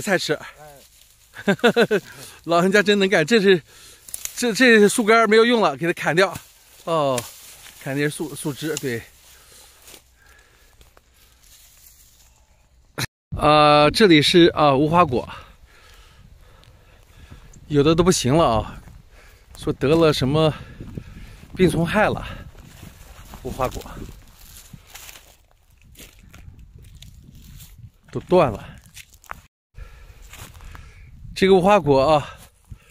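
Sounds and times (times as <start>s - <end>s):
rustling of dry branches: 0.0s - 12.9s, 14.9s - 31.2s
wind rumble on microphone: 15.6s - 29.4s, 30.2s - 32.9s.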